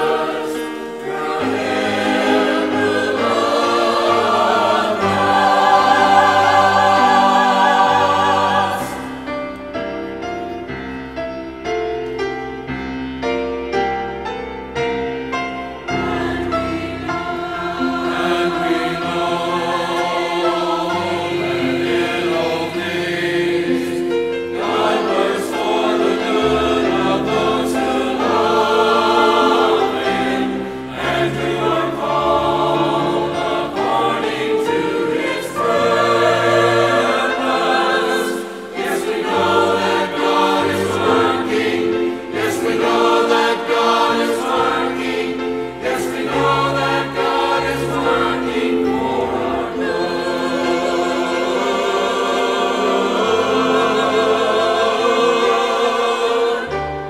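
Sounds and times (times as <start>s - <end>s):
choir singing: 0.0s - 11.9s, 13.3s - 57.0s.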